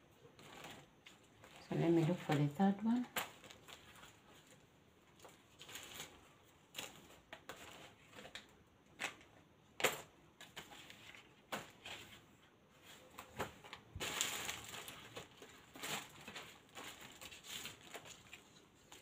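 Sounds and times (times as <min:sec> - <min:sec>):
paper rustling: 0:00.2 - 0:19.0.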